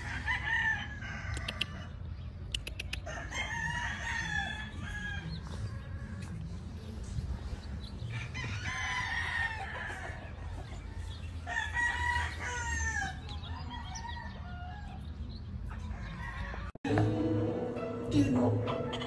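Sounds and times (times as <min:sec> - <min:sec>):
rooster crowing: 0:00.0 - 0:01.9, 0:03.1 - 0:05.5, 0:08.1 - 0:15.0
steady low rumble: 0:04.5 - 0:08.6.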